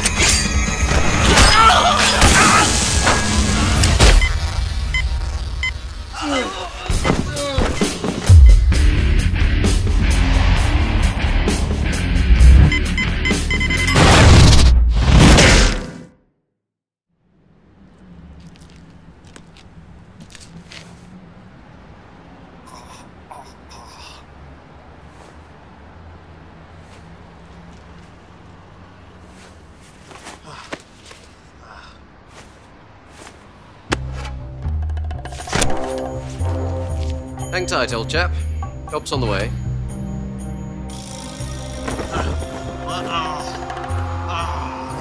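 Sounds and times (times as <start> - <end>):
heavy impact hit: 8.3 - 12.8
deep low music bed: 8.3 - 13.9
short high beeps: 12.6 - 14.0.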